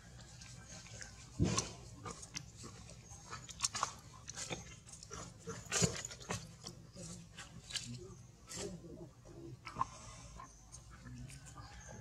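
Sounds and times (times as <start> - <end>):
macaque chewing food: 0.0 - 12.0.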